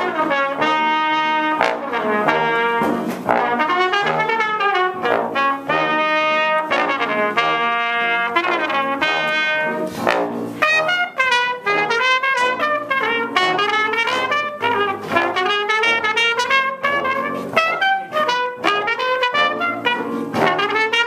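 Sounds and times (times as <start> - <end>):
trumpet and trombone duet: 0.0 - 21.0.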